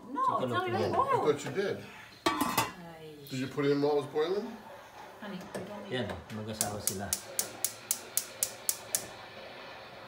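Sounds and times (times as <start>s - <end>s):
gas burner igniter clicking: 6.3s - 9.2s.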